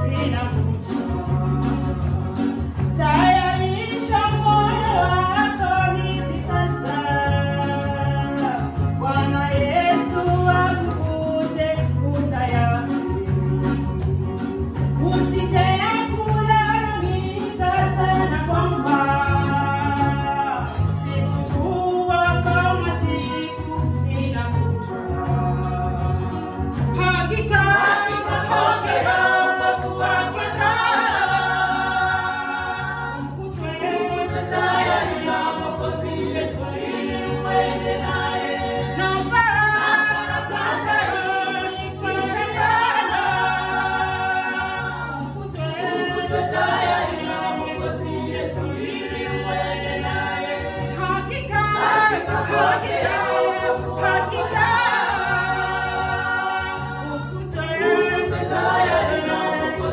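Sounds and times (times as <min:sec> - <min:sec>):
women's choir singing gospel: 0:00.0 - 0:23.7, 0:25.2 - 0:59.9.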